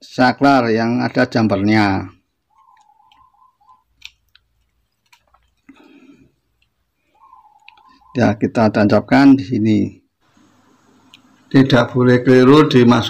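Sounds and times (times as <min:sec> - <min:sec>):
wire clicking against plastic switch: 0:02.7 - 0:05.4
handling rustle: 0:03.8 - 0:06.9.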